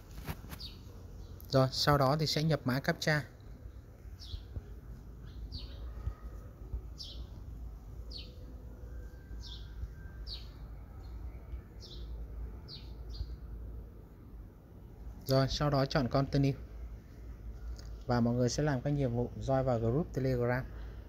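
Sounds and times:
bird chirping: 0:00.1 - 0:13.7.

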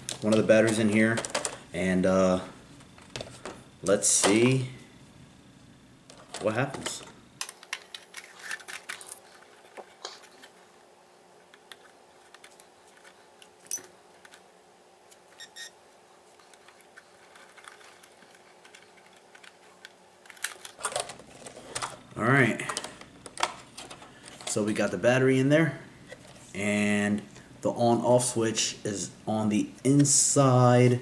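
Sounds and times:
faint steady hum: 0:00.0 - 0:31.0.

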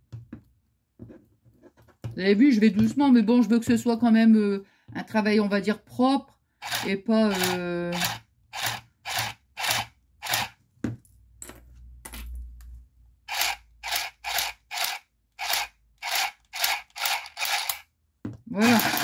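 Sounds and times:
mini sewing machine stitching: 0:06.6 - 0:10.6, 0:13.3 - 0:17.9, 0:18.6 - 0:19.0.

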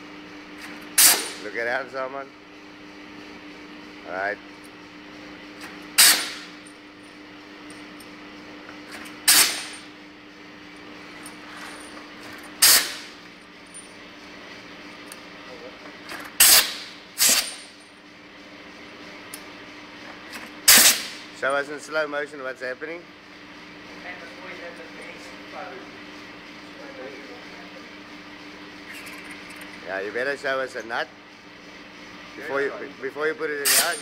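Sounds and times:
workshop tool short sharp bursts: 0:00.9 - 0:01.5, 0:05.9 - 0:06.6, 0:09.2 - 0:09.9, 0:12.6 - 0:13.2, 0:16.1 - 0:17.8, 0:20.6 - 0:21.3, 0:33.5 - 0:34.0.

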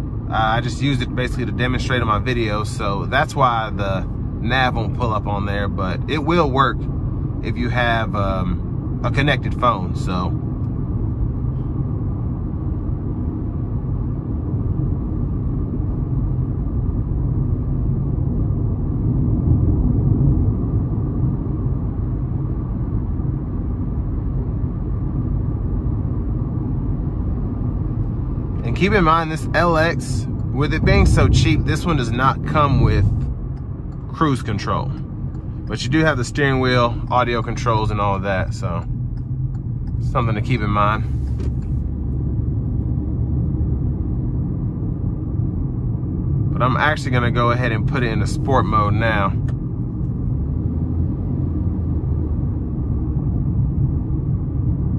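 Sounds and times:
car cabin road and engine rumble: 0:00.0 - 0:54.9.

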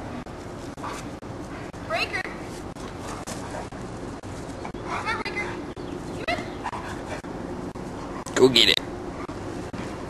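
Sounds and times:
dog yelping: 0:04.7 - 0:07.3.

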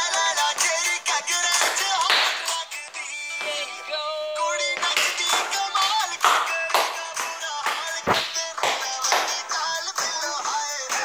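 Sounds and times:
upbeat dance music with singing: 0:00.0 - 0:11.0.

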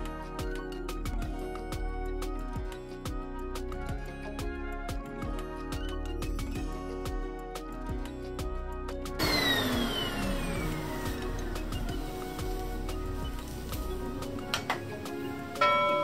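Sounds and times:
background music: 0:00.0 - 0:16.0
bright chime: 0:15.6 - 0:16.0.

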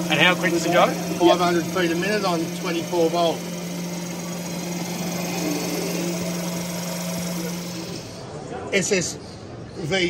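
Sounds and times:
electric fishing reel motor hum: 0:00.0 - 0:08.2.

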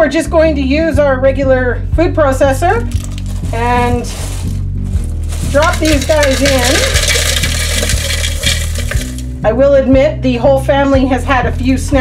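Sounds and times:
sugar pieces clattering into plastic bowl: 0:02.9 - 0:03.8, 0:05.1 - 0:09.4.

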